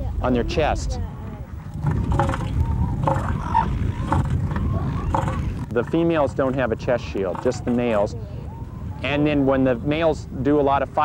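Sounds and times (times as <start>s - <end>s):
elephant seal low pulsing call: 1.8s - 5.7s.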